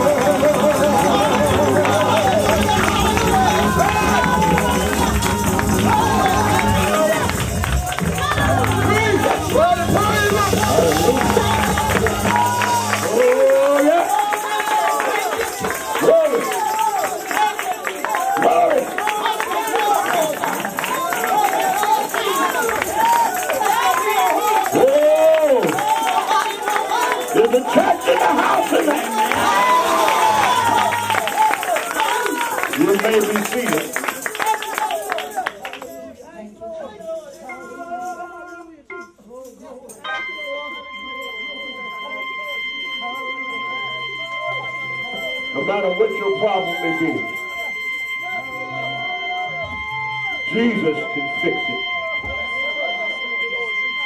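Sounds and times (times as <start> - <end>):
person singing gospel: 0.0 - 35.2
tambourine: 0.0 - 50.0
keyboard: 0.0 - 54.0
deep bass: 0.6 - 13.3.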